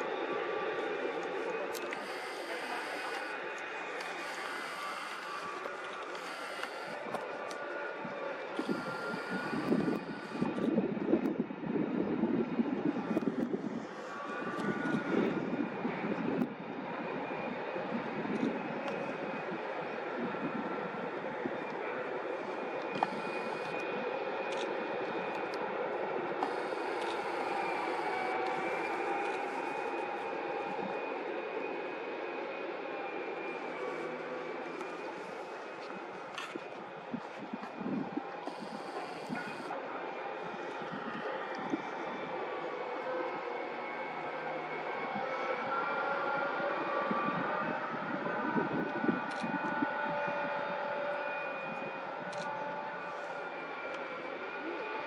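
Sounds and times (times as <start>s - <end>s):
heavy machinery droning: 0.8s - 10.7s, 26.3s - 31.8s.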